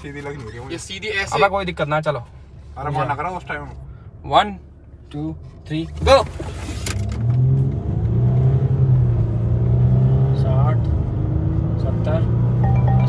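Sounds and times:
car engine accelerating hard: 0:05.8 - 0:13.0.

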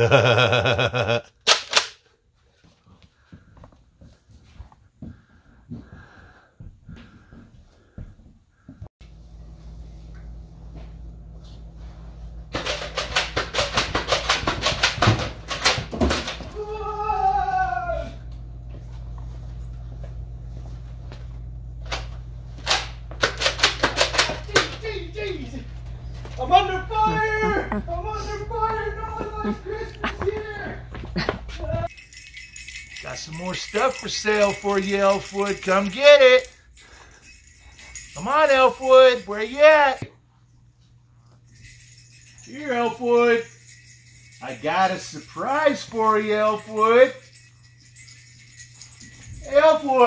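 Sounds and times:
man laughing: 0:00.0 - 0:01.4, 0:26.6 - 0:31.9.

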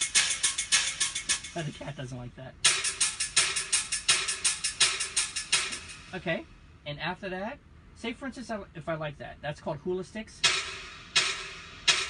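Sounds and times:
clacking stick strikes: 0:02.6 - 0:06.2, 0:10.4 - 0:12.0.

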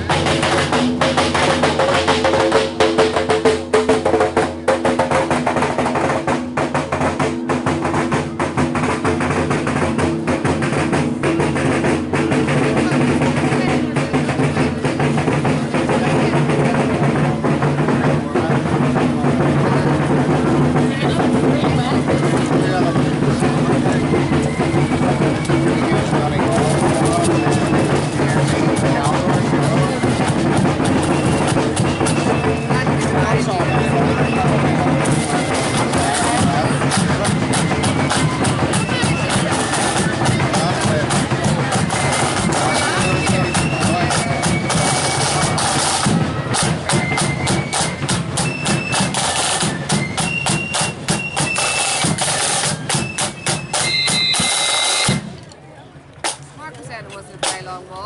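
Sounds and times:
bass drum beats: 0:00.0 - 0:55.5
rapid snare drum strokes: 0:00.0 - 0:55.5, 0:56.2 - 0:56.6, 0:57.2 - 0:58.0
marching band playing: 0:00.0 - 0:58.0.

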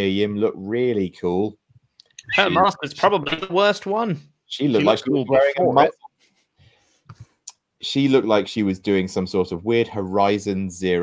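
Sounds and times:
man talking: 0:00.0 - 0:01.6, 0:02.2 - 0:06.0, 0:07.8 - 0:11.0.

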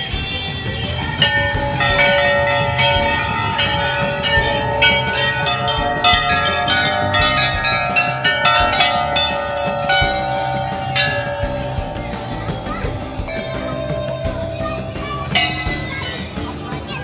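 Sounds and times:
brass temple bells ringing: 0:00.0 - 0:16.9.

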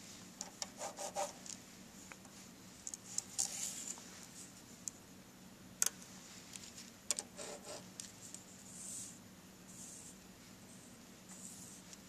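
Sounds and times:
pen scratching on paper: 0:00.8 - 0:01.4, 0:07.4 - 0:07.8.

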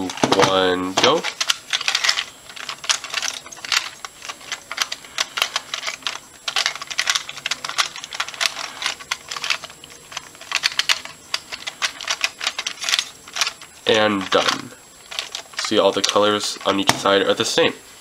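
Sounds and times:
plastic bricks clicking: 0:00.0 - 0:17.2.

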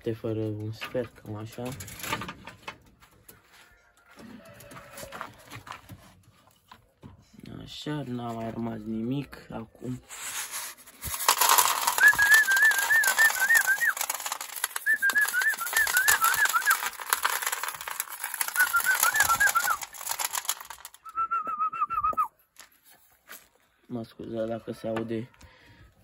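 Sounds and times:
grain rattling into wooden trough: 0:10.1 - 0:21.6
person whistling a warbling call: 0:12.0 - 0:14.0, 0:14.8 - 0:16.8, 0:18.5 - 0:19.8, 0:21.0 - 0:22.3.

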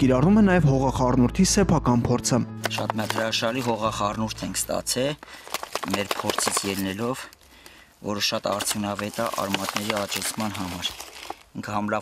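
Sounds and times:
man speaking: 0:00.0 - 0:05.2, 0:08.0 - 0:11.0
potting soil rustling by hand: 0:02.6 - 0:12.0.

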